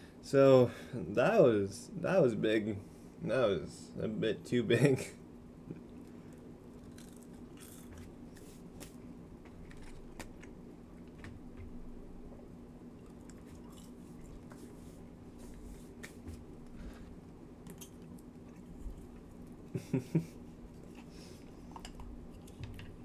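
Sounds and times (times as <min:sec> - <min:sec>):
steady low hum: 0:00.0 - 0:23.0
person chewing crunchy fries: 0:05.8 - 0:11.3, 0:12.9 - 0:14.9.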